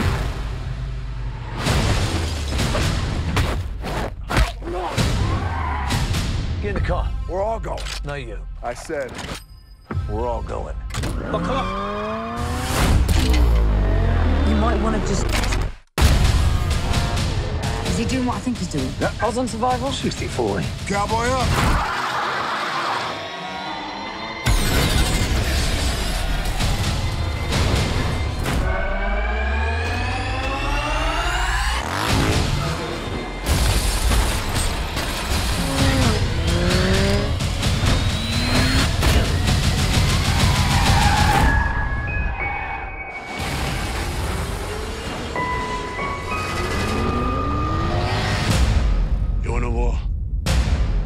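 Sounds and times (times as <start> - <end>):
dramatic music: 9.9 - 51.0
engine revving: 11.1 - 15.8, 28.7 - 41.0, 43.9 - 48.9.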